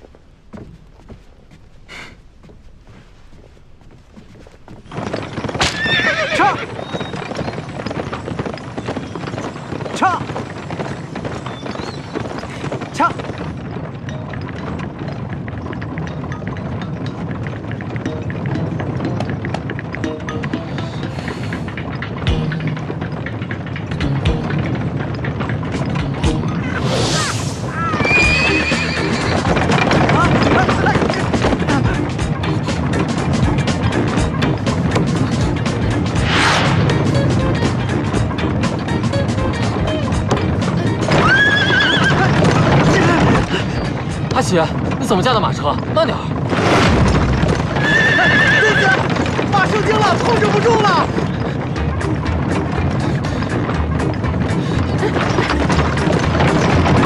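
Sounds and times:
hooves clip-clopping: 0:00.0 - 0:57.0
horses neighing: 0:04.2 - 0:57.0
background music: 0:14.0 - 0:57.0.

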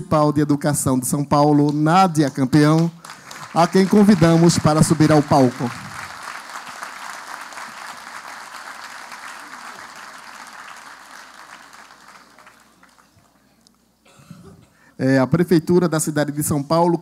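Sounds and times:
audience applauding: 0:02.8 - 0:13.4.

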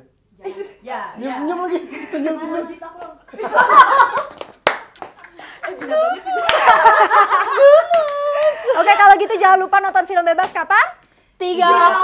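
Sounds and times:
young women laughing and exclaiming: 0:00.4 - 0:04.4, 0:05.3 - 0:09.8
hand clap: 0:04.2 - 0:08.6
light claps or slaps: 0:04.3 - 0:05.4.

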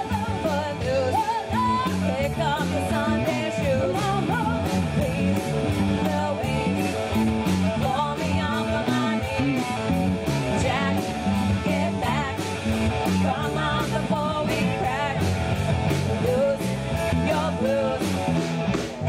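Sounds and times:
drum kit with cymbals: 0:00.0 - 0:19.0
electric guitars and bass: 0:00.0 - 0:19.0
person singing: 0:00.0 - 0:19.0.

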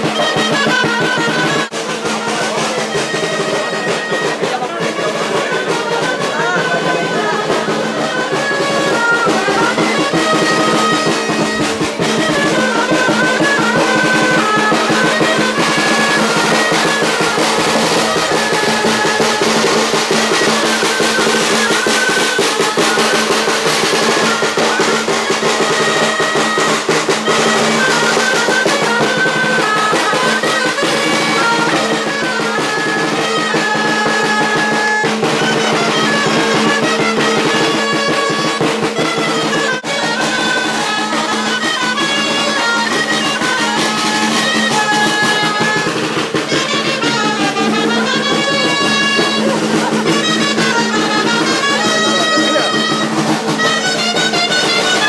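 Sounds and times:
clarinets playing melody: 0:00.0 - 0:55.0
rapid snare drum beat: 0:00.0 - 0:55.0.

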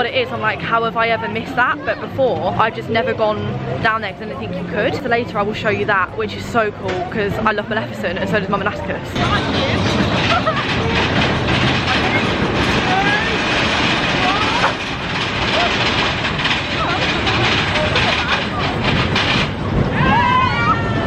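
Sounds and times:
roller coaster rattling on track: 0:00.0 - 0:21.0.

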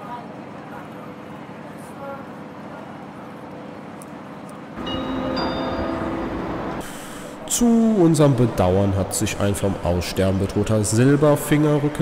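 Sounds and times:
railway station background hum: 0:00.0 - 0:12.0
platform announcement: 0:04.8 - 0:06.8
public-address chime: 0:04.8 - 0:06.8.

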